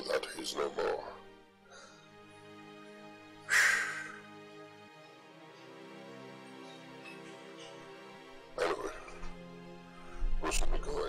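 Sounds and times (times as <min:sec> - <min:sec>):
soft background music: 0:00.0 - 0:11.0
crow cawing: 0:03.5 - 0:04.4.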